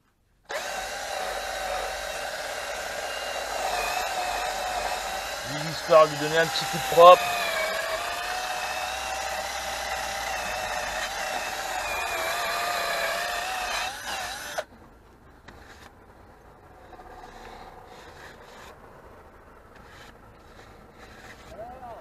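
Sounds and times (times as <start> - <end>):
drill wire brush on metal: 0.5 - 14.7, 16.8 - 18.8, 19.7 - 22.0.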